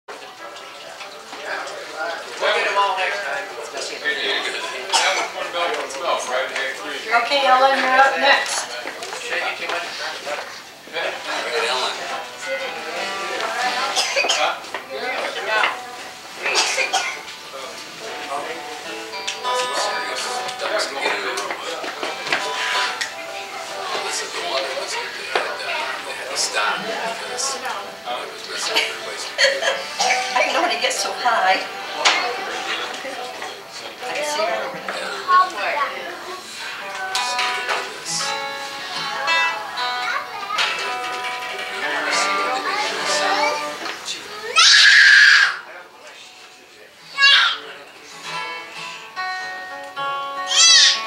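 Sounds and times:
indistinct chatter of voices: 0.1 - 51.0
people talking: 0.4 - 44.7
acoustic string instrument notes: 17.3 - 44.4.

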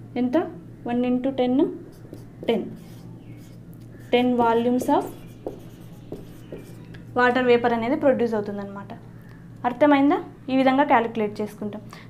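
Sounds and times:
low steady hum: 0.0 - 12.0
marker writing on whiteboard: 1.9 - 7.4.

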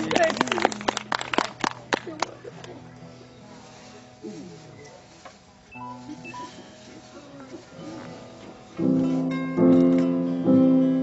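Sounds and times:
faint live music: 0.0 - 11.0
short high tones: 5.8 - 6.8.

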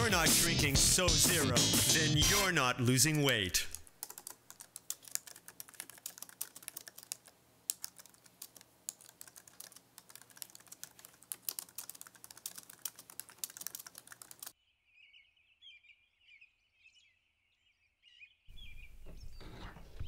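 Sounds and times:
typing on computer keyboard: 3.7 - 14.6.

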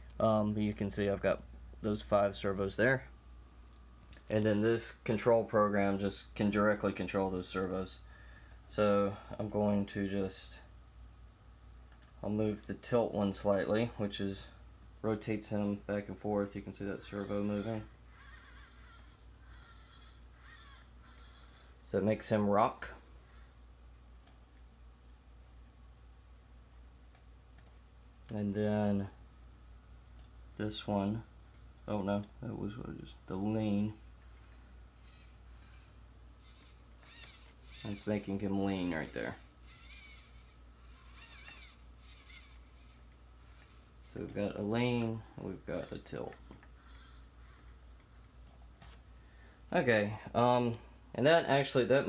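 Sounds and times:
steady low hum: 0.0 - 52.0
servo whirring faintly: 11.9 - 24.4, 30.1 - 49.0.

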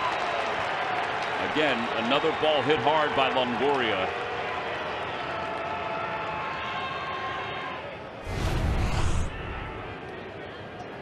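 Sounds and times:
low rumbling boom: 8.2 - 9.9.

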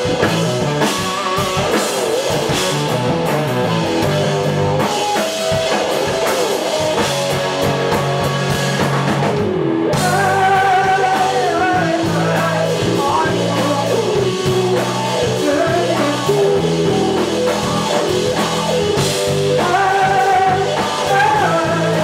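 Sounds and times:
live rock band playing: 0.0 - 22.0
lead vocal singing: 9.9 - 18.0, 19.5 - 22.0.

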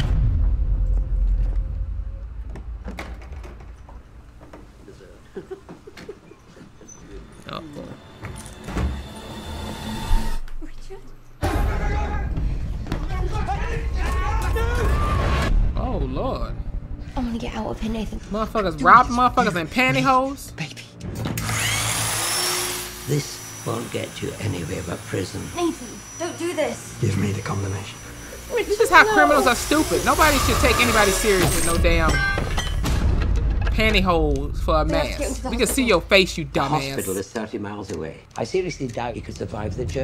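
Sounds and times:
deep low boom: 0.0 - 3.2, 11.4 - 18.4
loud steady hissing: 22.0 - 31.8.

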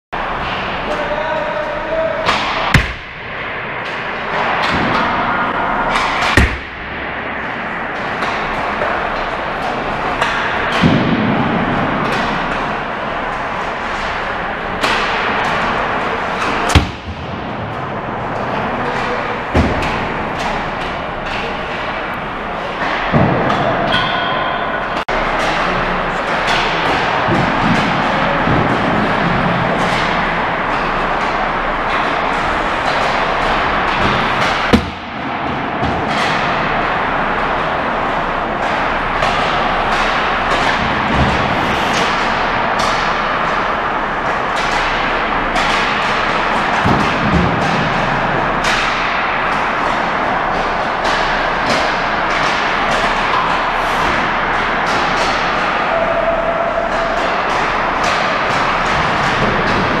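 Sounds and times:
hockey sticks and pucks clacking: 0.2 - 60.0.

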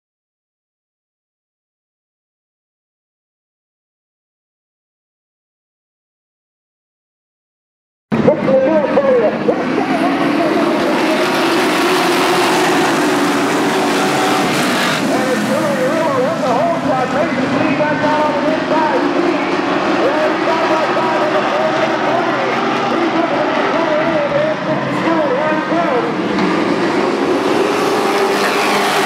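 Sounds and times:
race truck engines droning: 8.1 - 29.0
people talking: 8.2 - 12.6, 15.0 - 26.2.

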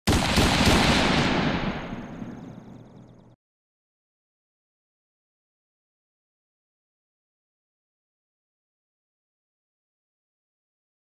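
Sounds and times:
loud boom with crackle: 0.1 - 2.9.

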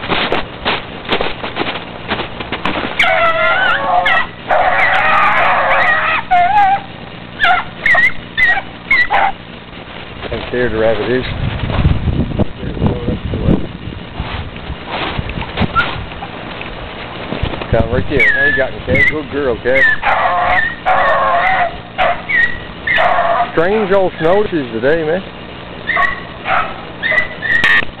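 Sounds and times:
footsteps crunching in snow: 0.0 - 4.3, 14.1 - 18.7
brushing past branches: 0.0 - 4.4, 14.0 - 20.2
hound baying: 3.0 - 9.4, 18.1 - 23.9, 25.8 - 28.0
wind noise on microphone: 9.9 - 20.9.

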